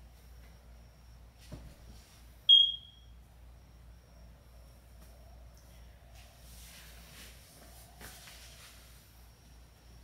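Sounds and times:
short high electronic beep: 2.5s - 3.1s.

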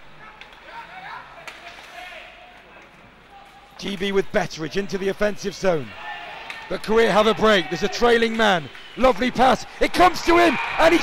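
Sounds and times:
hockey sticks clacking on puck: 1.4s - 2.0s.

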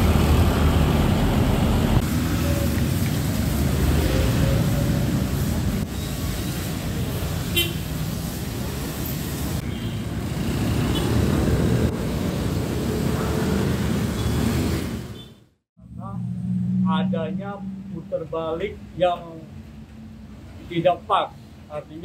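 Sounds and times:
traffic passing on wet street: 0.0s - 15.4s
horn toot: 7.5s - 7.9s.

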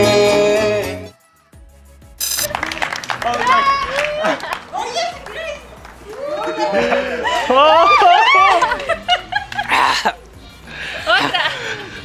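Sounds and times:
people laughing: 2.5s - 12.0s
people shrieking: 3.3s - 5.5s, 6.1s - 8.8s.

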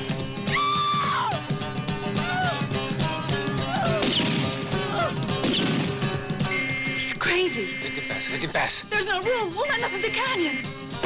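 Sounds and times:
rock music: 0.0s - 11.0s
sharp gunshots: 3.9s - 6.2s.

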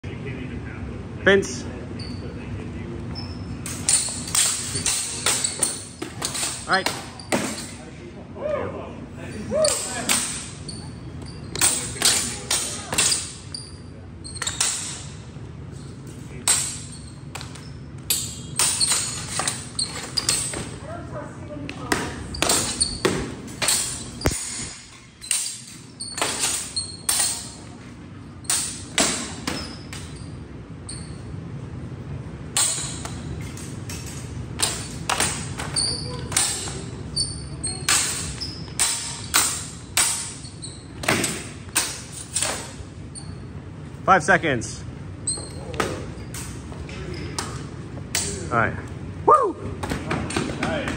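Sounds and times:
steel swords clashing: 3.6s - 7.8s, 9.6s - 13.5s, 14.4s - 15.2s, 16.4s - 20.8s, 22.4s - 27.8s, 28.4s - 30.2s, 32.5s - 42.8s.

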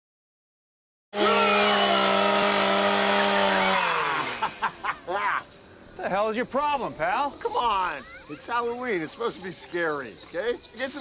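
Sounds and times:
chainsaw engine running: 1.2s - 4.8s.

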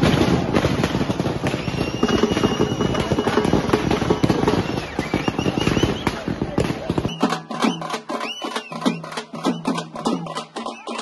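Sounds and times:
firecrackers crackling: 0.0s - 11.0s
crowd shouting: 0.7s - 7.0s.

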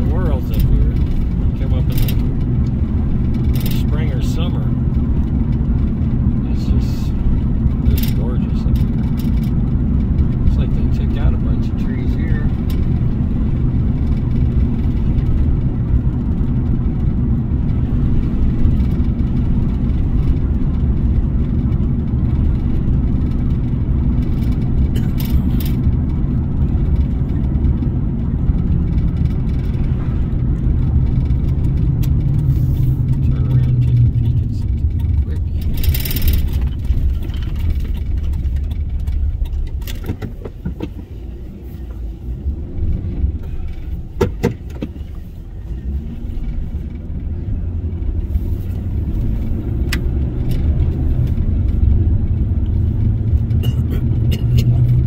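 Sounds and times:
car interior engine rumble: 0.0s - 55.0s
tyres on road: 0.0s - 55.0s.

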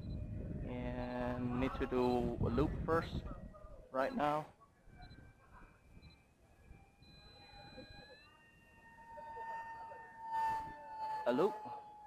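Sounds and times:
electric motor and propeller whining: 5.0s - 12.0s.

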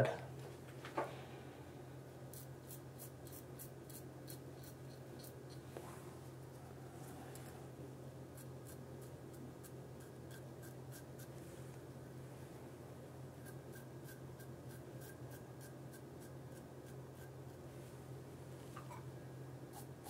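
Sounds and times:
low steady hum: 0.0s - 20.0s
razor scraping stubble: 2.3s - 5.6s, 13.4s - 17.6s.

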